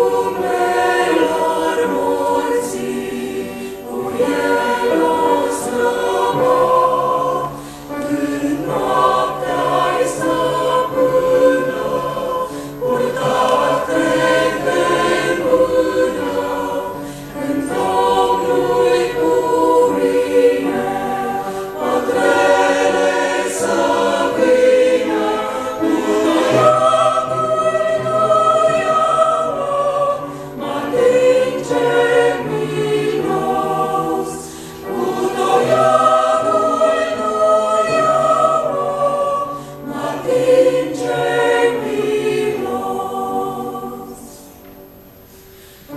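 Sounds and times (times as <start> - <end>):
choir singing a hymn: 0.0 - 45.9.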